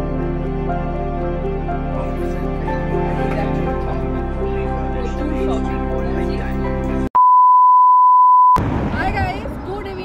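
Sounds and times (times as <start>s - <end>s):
background music: 0.0s - 7.2s
steady test-tone beep: 7.2s - 8.6s.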